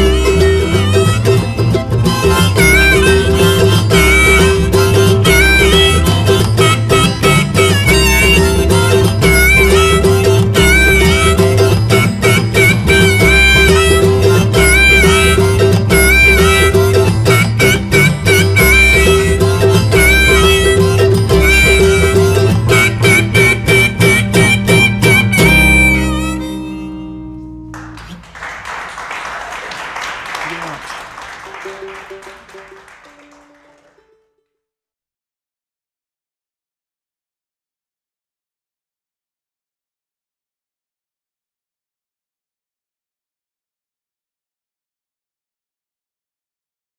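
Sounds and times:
upright bass line: 0.0s - 28.3s
strummed acoustic guitar: 0.0s - 28.4s
mandolin: 0.0s - 34.3s
harmonica bending notes: 0.0s - 34.4s
audience applause: 27.8s - 34.1s.

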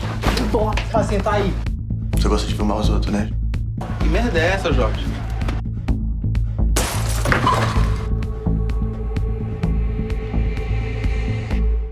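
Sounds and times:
trailer music with pulsing bass: 0.0s - 11.9s
loud shattering crash: 6.8s - 8.1s.

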